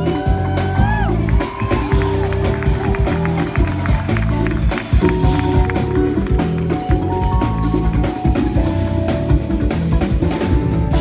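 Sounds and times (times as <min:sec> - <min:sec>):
drum kit steady beat: 0:00.0 - 0:11.0
electric bass notes: 0:00.0 - 0:11.0
keyboard chords: 0:00.0 - 0:11.0.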